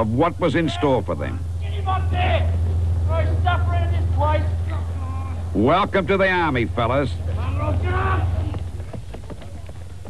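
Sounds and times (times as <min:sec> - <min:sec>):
steady low hum: 0:00.0 - 0:10.0
man's drawn-out shout: 0:07.4 - 0:08.5.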